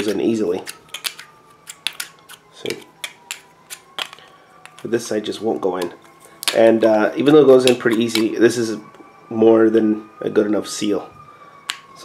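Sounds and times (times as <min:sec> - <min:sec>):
plastic pipe fittings clicking: 0:00.0 - 0:04.9.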